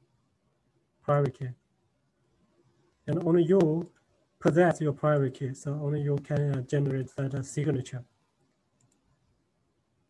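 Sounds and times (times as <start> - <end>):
faint clicks: 8.4 - 9.3.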